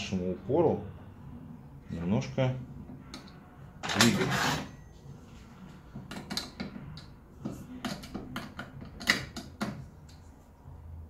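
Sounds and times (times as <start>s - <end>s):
screwdriver clicking and knocking: 6.0s - 7.1s, 7.8s - 9.8s.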